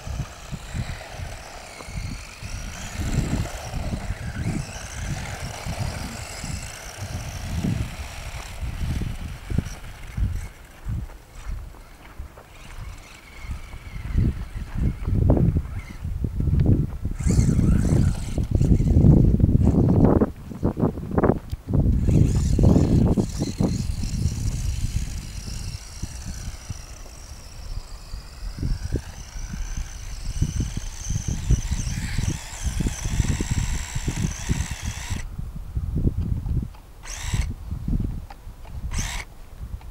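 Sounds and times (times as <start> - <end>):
electric motor whine: 0.0 - 16.2, 17.1 - 20.2, 21.9 - 35.3, 37.0 - 37.6, 38.9 - 39.3
wind on microphone: 0.0 - 39.9.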